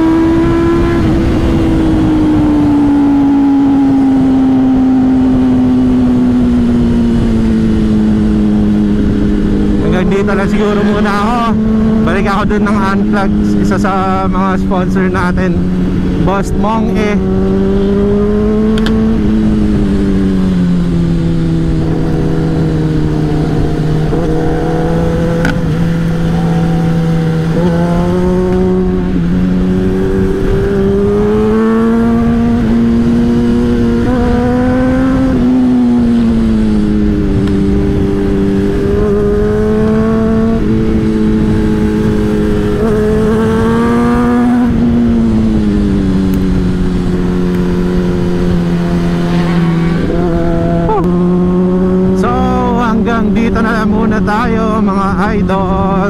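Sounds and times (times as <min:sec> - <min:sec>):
motorcycle engine running: 0:00.0 - 0:56.0
wind noise: 0:00.0 - 0:56.0.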